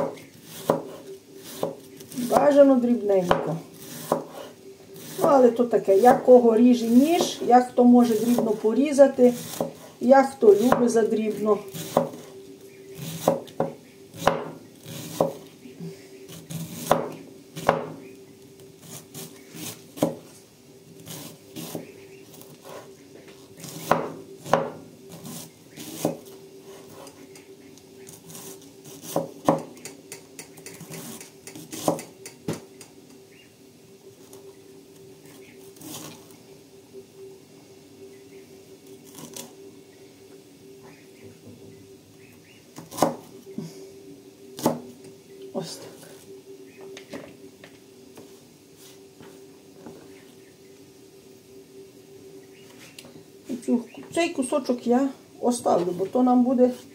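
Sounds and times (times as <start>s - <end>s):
knife chopping on wooden board: 0.0s - 1.8s, 3.3s - 4.4s, 11.8s - 12.2s, 13.2s - 15.4s, 16.5s - 18.0s, 30.7s - 32.6s.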